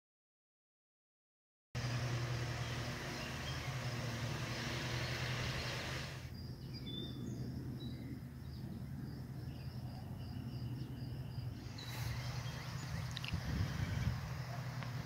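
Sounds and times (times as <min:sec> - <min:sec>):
birds chirping: 0:01.8 - 0:15.0
steady low hum: 0:01.8 - 0:15.0.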